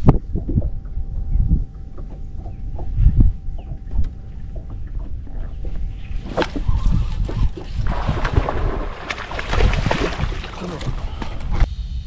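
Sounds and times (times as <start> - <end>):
water noise: 0.0 - 11.7
wind buffeting microphone: 0.0 - 11.7.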